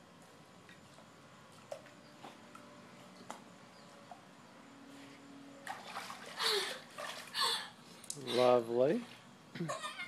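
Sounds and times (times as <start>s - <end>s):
pool water splashing: 5.6s - 9.5s.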